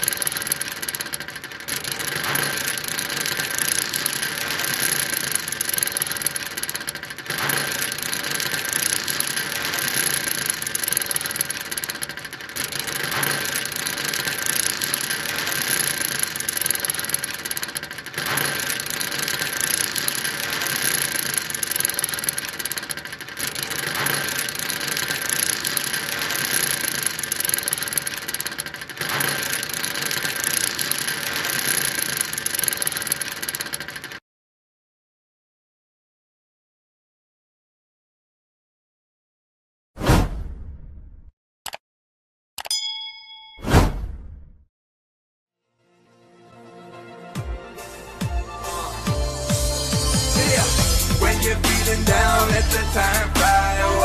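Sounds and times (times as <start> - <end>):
anchor chain mechanical rattling: 0.0 - 34.2.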